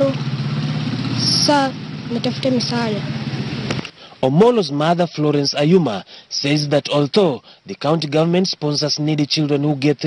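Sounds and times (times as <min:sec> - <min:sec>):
boy speaking: 0:00.0 - 0:00.2, 0:01.2 - 0:03.2
engine idling: 0:00.0 - 0:06.3.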